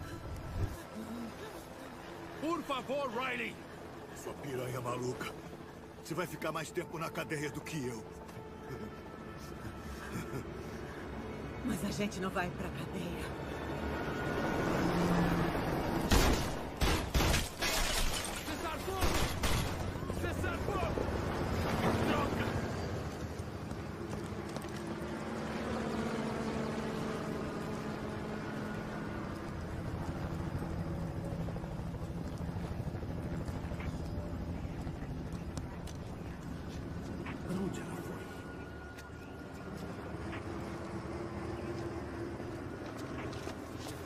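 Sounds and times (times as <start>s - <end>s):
steady background noise: 0.0s - 44.0s.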